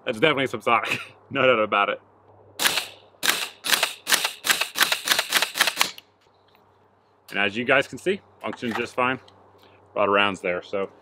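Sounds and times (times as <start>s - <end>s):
suppressed pistol shots: 2.6s - 6.0s.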